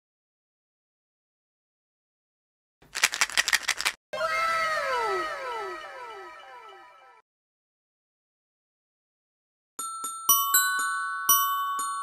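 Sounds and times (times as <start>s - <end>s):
fast clicking rattle: 2.9s - 4.0s
descending chiming tones: 4.2s - 7.2s.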